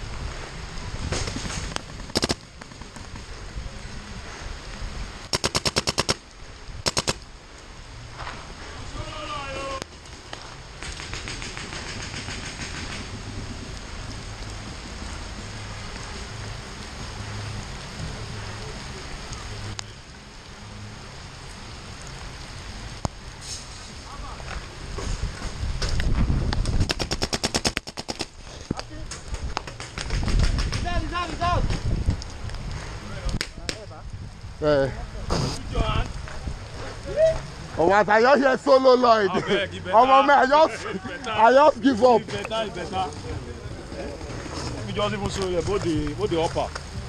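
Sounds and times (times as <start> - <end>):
paintball markers firing: 1.8 - 3.2, 5.3 - 6.2, 6.8 - 7.2, 26.8 - 28.3.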